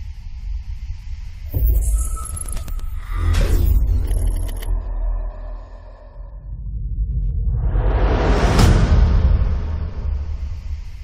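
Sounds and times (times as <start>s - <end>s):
deep cinematic rumble: 0.0s - 11.0s.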